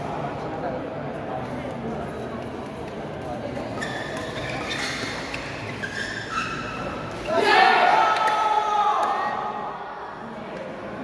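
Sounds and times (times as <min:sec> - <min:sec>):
people shouting in sports hall: 0:06.5 - 0:10.5.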